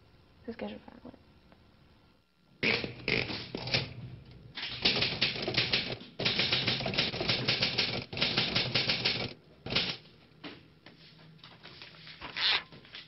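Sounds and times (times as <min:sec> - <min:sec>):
typewriter-like clattering clicks: 0:04.6 - 0:10.0.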